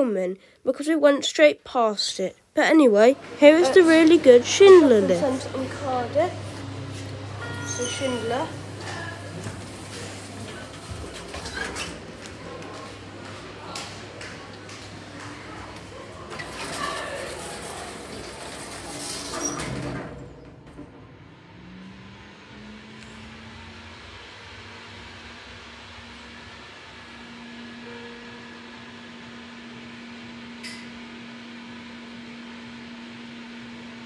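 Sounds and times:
background bustle: 2.6 - 21.9
low lift drive hum: 2.8 - 34.0
lift doors sliding shut: 3.2 - 25.2.

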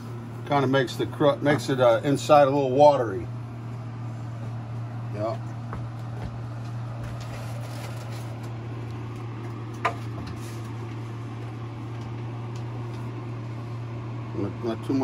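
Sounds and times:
low machine hum: 0.0 - 15.0.

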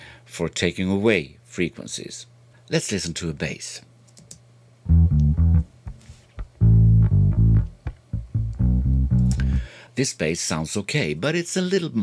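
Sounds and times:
bass line low notes: 4.9 - 9.7.

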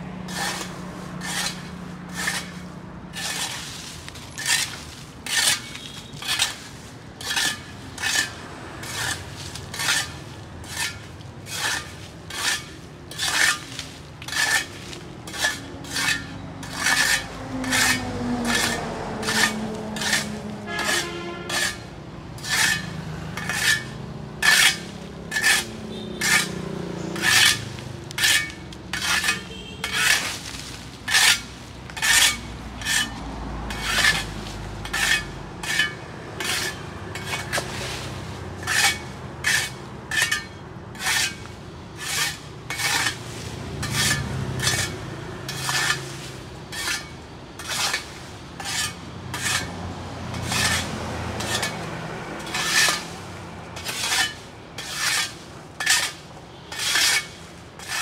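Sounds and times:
dry leaves pushed: 0.1 - 21.8, 24.5 - 35.8, 36.4 - 39.6, 41.2 - 49.7, 50.3 - 58.0
shovel scraping over paving stones: 0.2 - 58.0.

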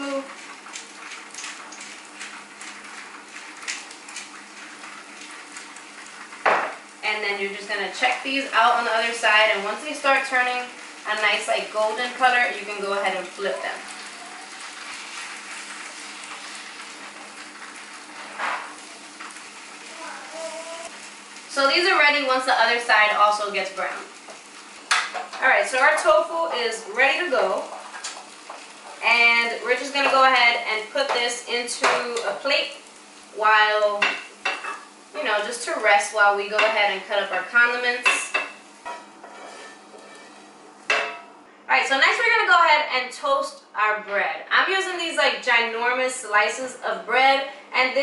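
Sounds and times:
tofu sizzling in oil: 0.0 - 7.0, 7.6 - 41.0
slices turned with spatula: 38.3 - 41.0.

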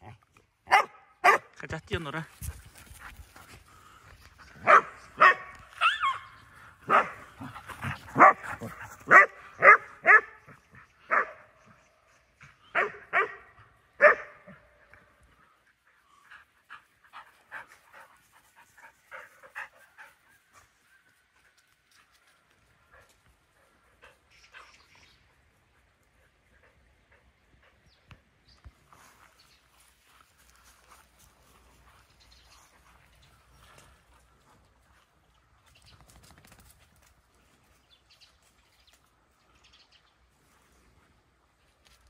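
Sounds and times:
dogs barking: 0.7 - 1.6, 4.6 - 11.6, 12.7 - 14.8.

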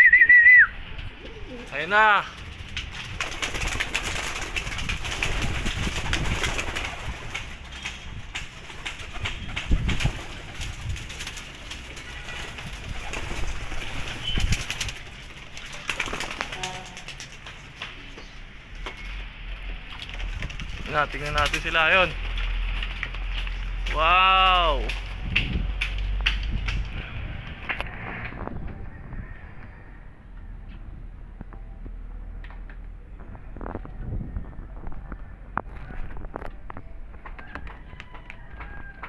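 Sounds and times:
wings flapping: 0.9 - 18.1, 19.8 - 28.7
pigeons cooing: 1.0 - 1.8.

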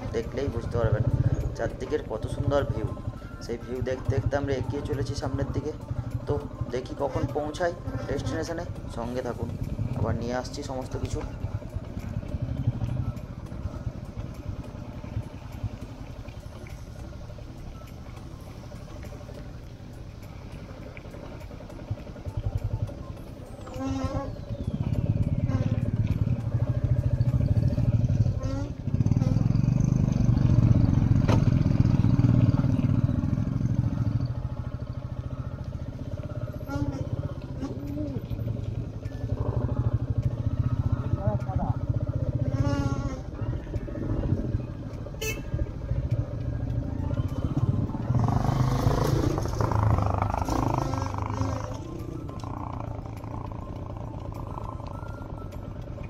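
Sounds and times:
motorcycle engine rumble: 0.0 - 56.0.

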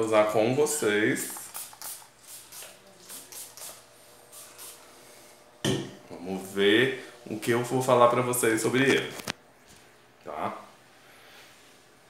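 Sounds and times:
perfume atomiser hisses: 1.1 - 5.6.

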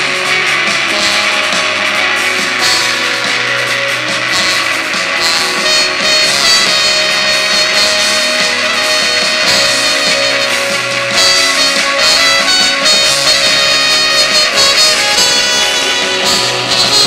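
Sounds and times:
electric guitars: 0.0 - 17.0
keyboard: 0.0 - 17.0
rock band playing live: 0.0 - 17.0.

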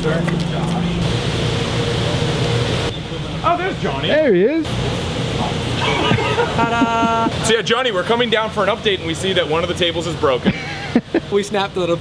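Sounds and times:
factory machinery drone: 0.0 - 7.5.

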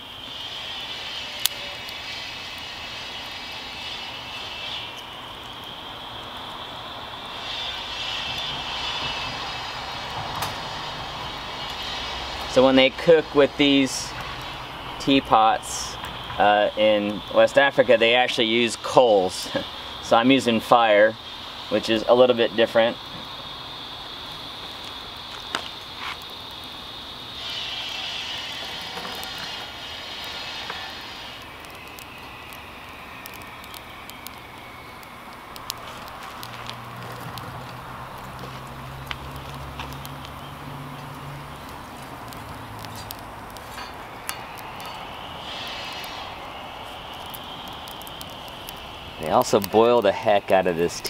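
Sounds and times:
low drone: 0.0 - 24.6, 26.9 - 51.0
twig fire crackling: 0.0 - 51.0.

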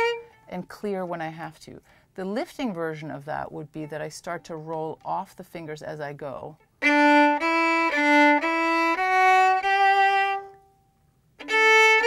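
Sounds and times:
solo violin bowed notes: 0.0 - 0.4, 6.8 - 10.8, 11.4 - 12.0.

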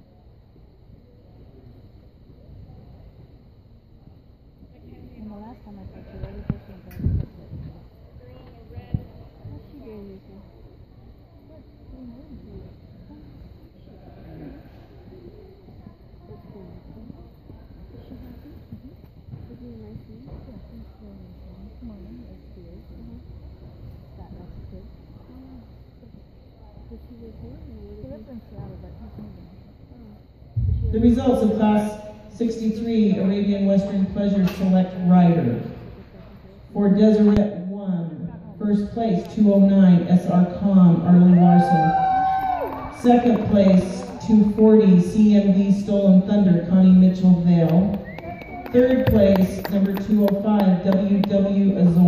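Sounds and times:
distant murmur of people talking: 0.0 - 52.0.

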